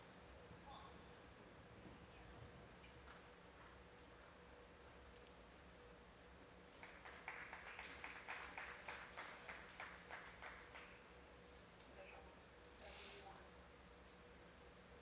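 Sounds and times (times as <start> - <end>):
crowd clapping: 6.7 - 11.0
brief hiss: 12.8 - 13.4.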